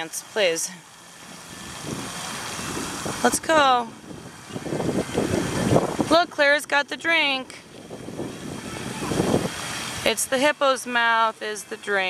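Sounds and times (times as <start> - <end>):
wind buffeting microphone: 1.2 - 10.6.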